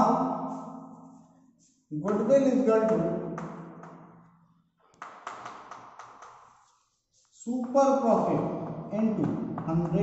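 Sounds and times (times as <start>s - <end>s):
chalk tapping on blackboard: 1.6s - 4.1s, 4.9s - 10.0s.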